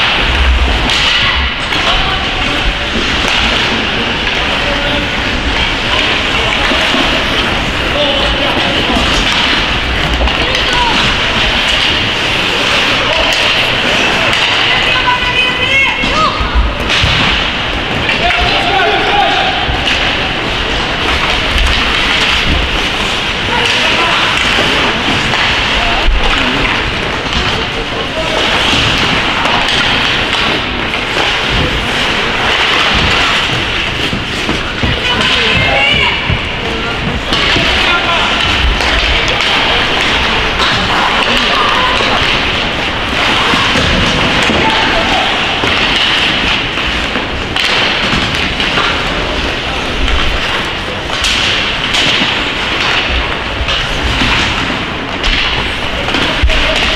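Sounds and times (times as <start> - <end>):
people shouting: 0.0 - 26.7, 34.5 - 46.8
rink crowd din: 0.0 - 56.9
skates scraping ice: 0.0 - 56.9
sticks and puck knocking: 0.0 - 56.9.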